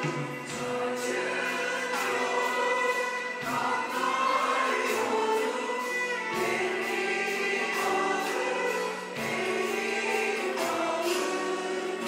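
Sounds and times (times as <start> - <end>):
instrumental accompaniment: 0.0 - 12.0
mixed choir singing in unison: 0.0 - 12.0.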